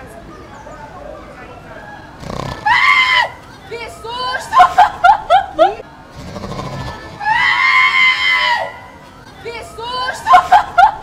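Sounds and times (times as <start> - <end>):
women screaming in fright: 2.6 - 3.4, 7.2 - 8.9.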